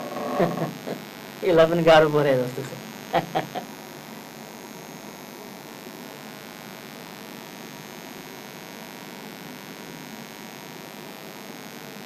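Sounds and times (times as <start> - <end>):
electrical hum and hiss: 0.0 - 12.0.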